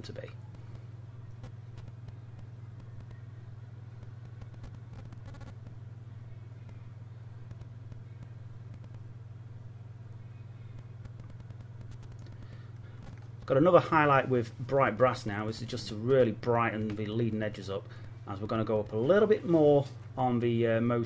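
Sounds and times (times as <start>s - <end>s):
faint room noise: 0.0s - 21.0s
steady low hum: 0.0s - 21.0s.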